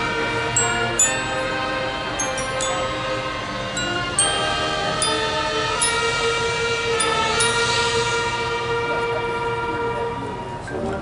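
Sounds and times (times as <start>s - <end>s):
high metallic percussion strikes: 0.0s - 10.7s
horns holding a sustained chord: 0.0s - 11.0s.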